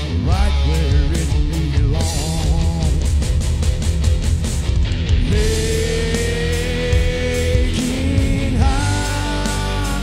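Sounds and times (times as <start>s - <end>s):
bass: 0.0s - 10.0s
electric guitar lead with bent notes: 0.0s - 10.0s
steady drum beat: 0.0s - 10.0s.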